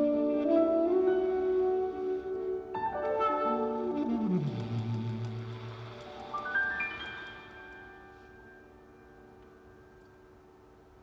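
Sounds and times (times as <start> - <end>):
tenor saxophone melody: 0.0 - 5.7
grand piano: 0.0 - 11.0.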